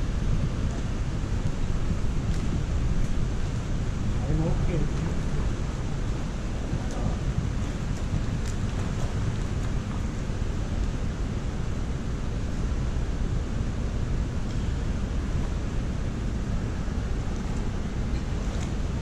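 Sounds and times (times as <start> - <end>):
low rumbling pool hall noise: 0.0 - 19.0.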